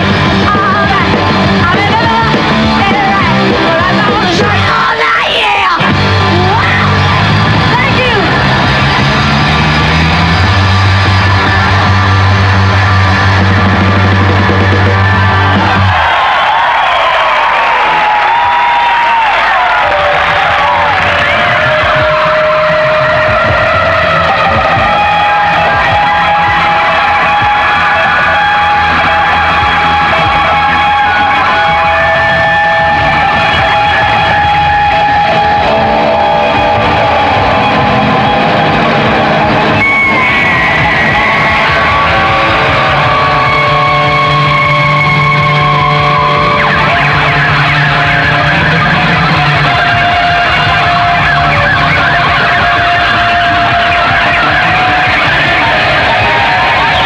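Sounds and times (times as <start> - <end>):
drums: 0.0 - 57.0
rock band playing loud: 0.0 - 57.0
lead guitar bending notes: 20.3 - 57.0.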